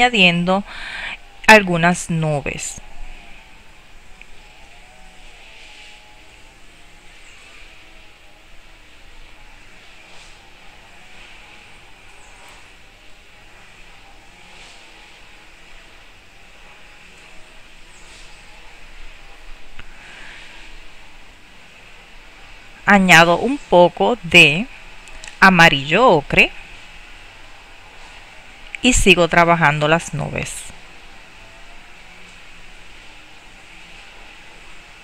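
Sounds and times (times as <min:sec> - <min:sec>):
faint wavering hum: 0:00.0 - 0:35.0.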